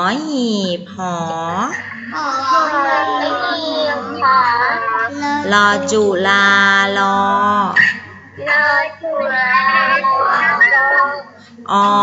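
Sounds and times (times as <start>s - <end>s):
child singing: 2.2s - 5.9s.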